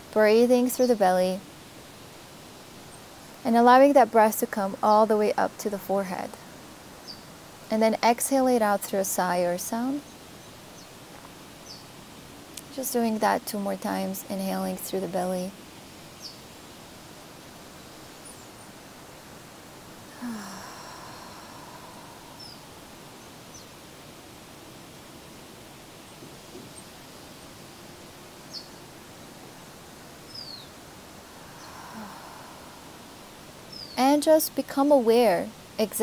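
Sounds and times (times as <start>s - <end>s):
outdoor background hiss: 0.0s - 36.0s
person sighing breaths: 20.1s - 22.7s, 31.2s - 33.3s.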